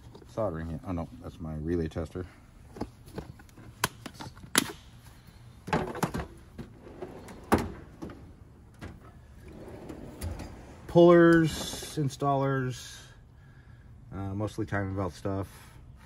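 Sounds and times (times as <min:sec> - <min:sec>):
tool box drawer sliding open: 0:05.8 - 0:12.2.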